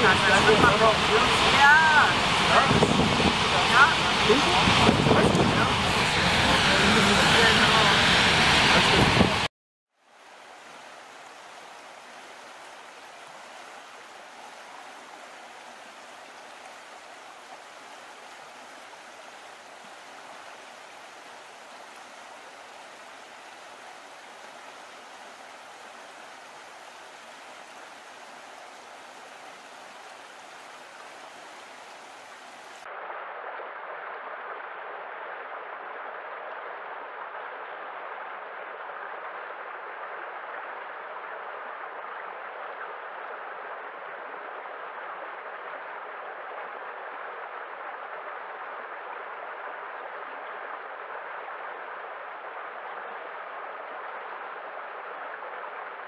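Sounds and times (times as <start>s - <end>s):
waterfall rushing: 0.0s - 9.5s, 10.2s - 33.2s
stream running over rocks: 0.0s - 56.0s.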